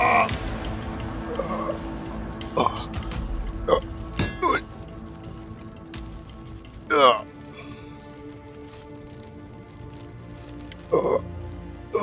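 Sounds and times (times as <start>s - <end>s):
man crying out in pain: 0.0s - 0.4s
dramatic drone music: 0.0s - 12.0s.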